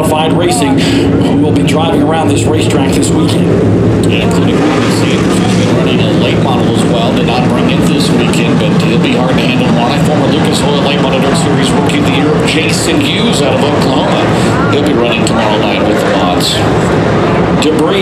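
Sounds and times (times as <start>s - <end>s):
indistinct voices: 0.0s - 18.0s
race car engines running: 0.0s - 18.0s.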